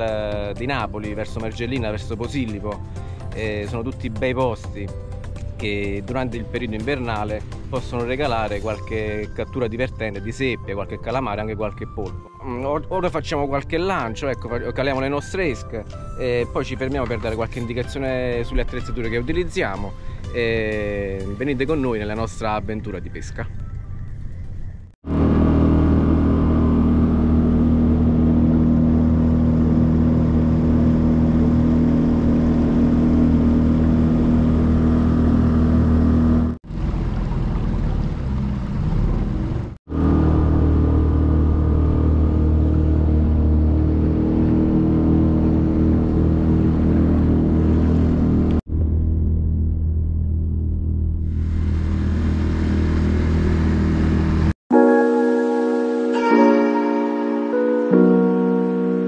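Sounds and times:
small boat motor running: 25.0 - 48.6, 49.4 - 54.5.

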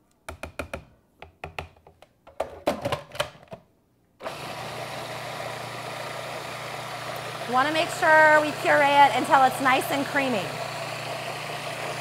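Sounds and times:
food processor motor humming: 4.2 - 12.0.

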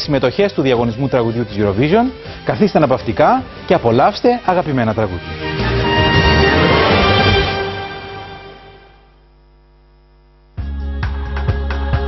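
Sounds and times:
electrical hum: 4.3 - 10.6.

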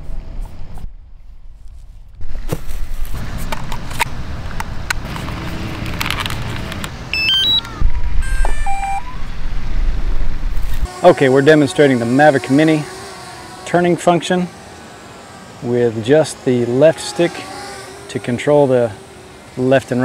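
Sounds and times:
rising electronic beeps: 7.1 - 9.4.

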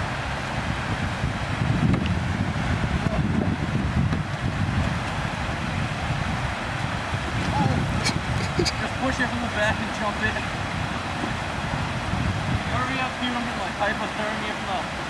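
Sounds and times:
water rushing down spillway: 0.0 - 15.0
wind noise on microphone: 0.0 - 15.0.

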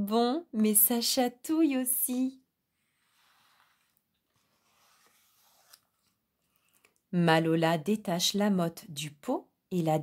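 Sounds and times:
paper page turning: 3.0 - 7.0.

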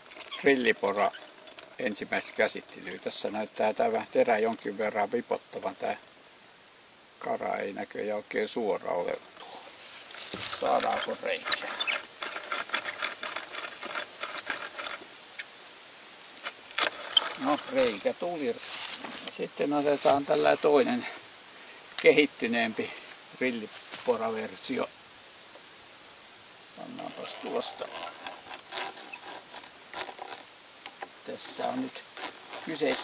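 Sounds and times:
hand drill gears rattling: 0.0 - 1.8, 10.1 - 15.0, 16.4 - 18.1, 27.1 - 33.0.

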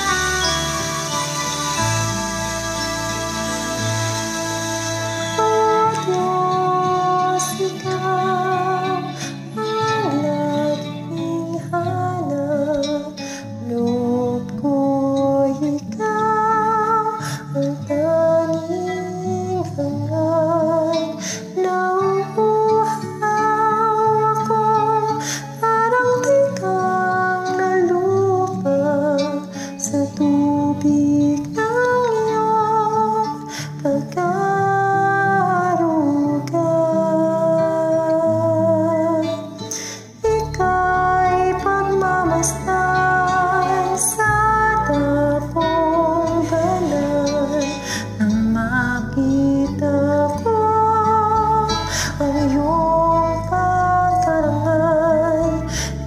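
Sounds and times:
karaoke backing track: 0.0 - 56.0
woman singing a slow ballad: 1.9 - 56.0.

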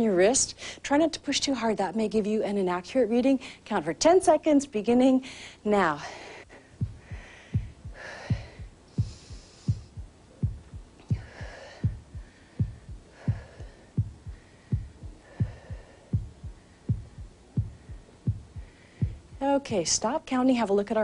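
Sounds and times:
heartbeat low thumps: 6.5 - 20.0.

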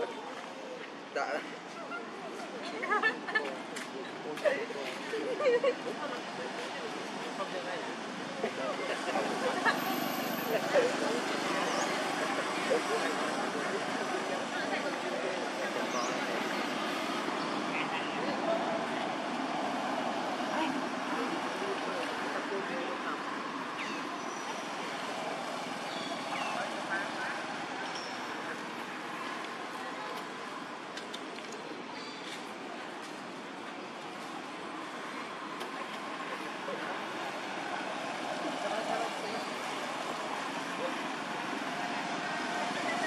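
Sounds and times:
steady outdoor hiss: 0.0 - 43.0.

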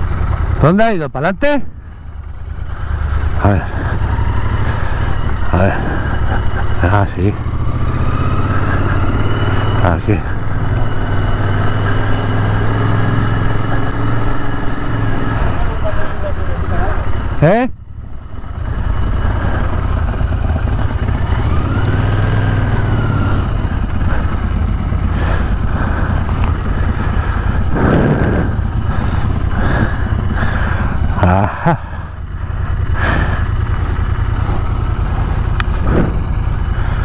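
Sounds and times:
motorcycle engine running slowly: 0.0 - 17.0, 17.8 - 37.0.

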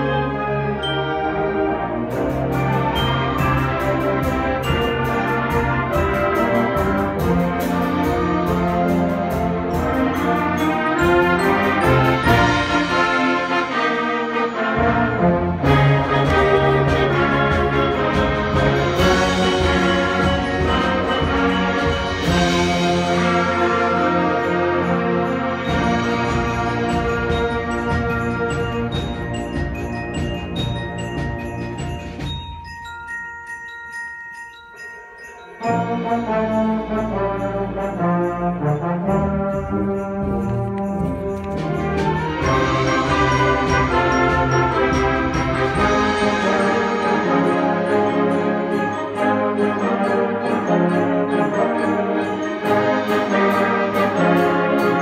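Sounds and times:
concert band playing: 0.0 - 33.7, 35.5 - 55.0
bell-like mallet percussion notes: 0.0 - 55.0.

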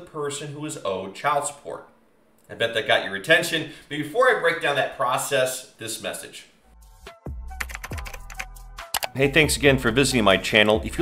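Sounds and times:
keyboard typing clicks: 7.6 - 9.2.

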